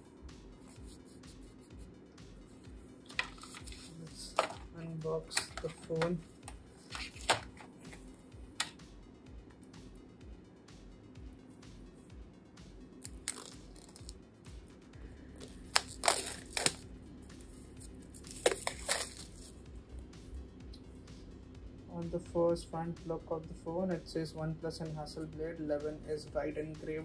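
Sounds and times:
faint background music: 0:00.0 - 0:27.0
plastic wrap crinkling and tearing: 0:13.0 - 0:14.2, 0:15.4 - 0:16.8, 0:18.1 - 0:19.5.

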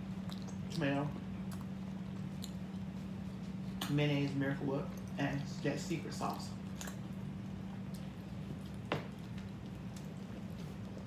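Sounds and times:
low steady hum: 0:00.0 - 0:11.0
people chewing: 0:00.0 - 0:11.0.

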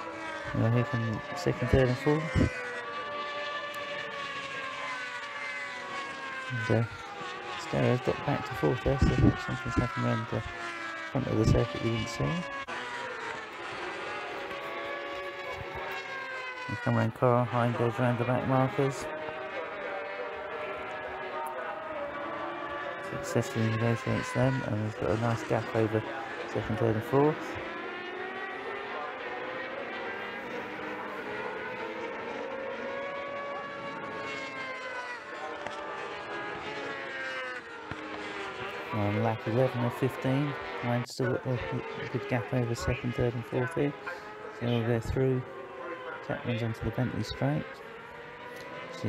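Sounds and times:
distant racing motorcycles revving: 0:00.0 - 0:49.0.

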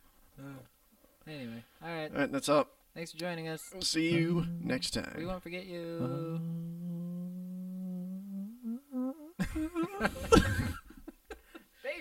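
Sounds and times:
man humming low note: 0:04.0 - 0:09.9.

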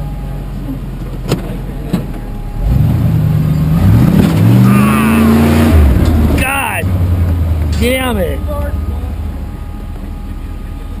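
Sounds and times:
buggy engine running low: 0:00.0 - 0:11.0.

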